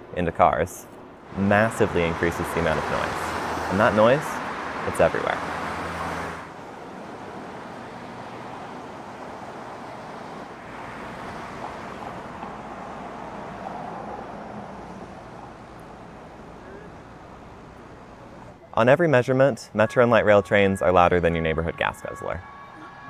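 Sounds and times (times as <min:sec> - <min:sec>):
cars passing on street: 0:00.0 - 0:18.8, 0:19.7 - 0:23.0.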